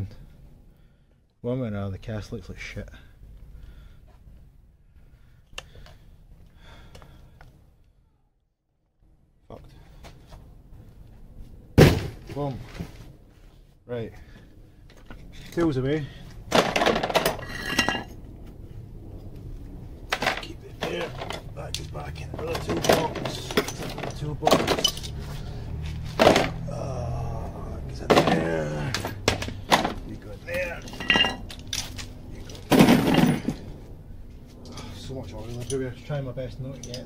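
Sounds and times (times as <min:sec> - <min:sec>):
metal tools clattering: 0:16.5 - 0:18.2, 0:20.1 - 0:21.7, 0:22.3 - 0:25.4, 0:26.0 - 0:26.6, 0:28.1 - 0:33.7, 0:34.6 - 0:37.0.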